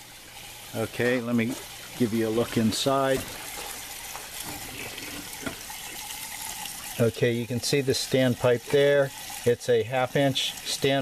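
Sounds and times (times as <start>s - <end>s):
water hissing and trickling: 0.0s - 11.0s.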